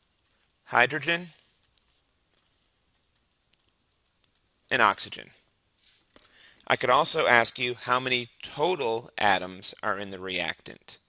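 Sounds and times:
stylus scratching on pen tablet: 0.0s - 4.8s.

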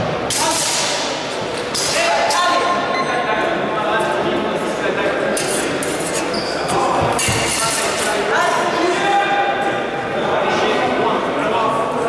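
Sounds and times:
people talking in echoing hall: 0.0s - 12.0s.

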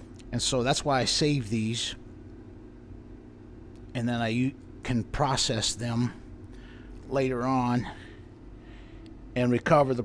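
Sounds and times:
machinery hum: 0.0s - 10.0s.

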